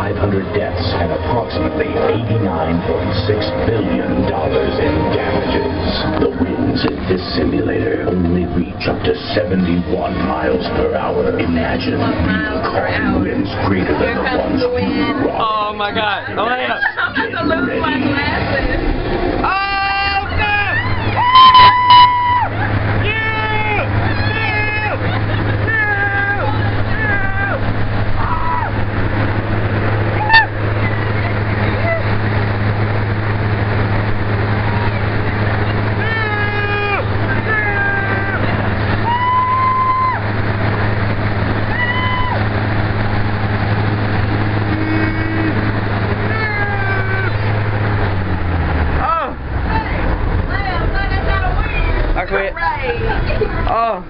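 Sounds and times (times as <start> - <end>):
blowers driving wind: 0.0 - 54.0
people screaming and yelling: 0.9 - 32.8, 34.3 - 52.2.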